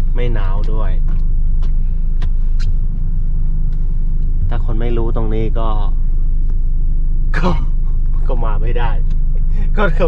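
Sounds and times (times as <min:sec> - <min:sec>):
van engine idling: 0:00.0 - 0:10.0.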